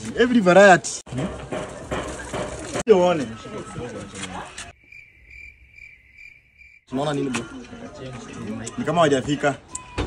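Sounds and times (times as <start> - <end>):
background noise: 0.0 - 10.0.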